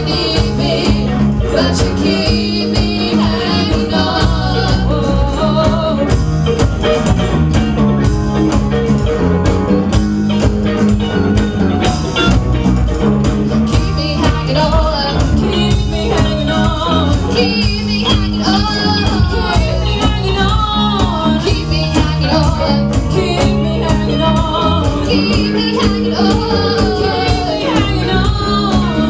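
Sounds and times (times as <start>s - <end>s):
women singing: 0.0s - 6.3s, 13.7s - 29.0s
bass guitar: 0.0s - 29.0s
drum kit steady beat: 0.0s - 29.0s
electric guitars: 0.0s - 29.0s.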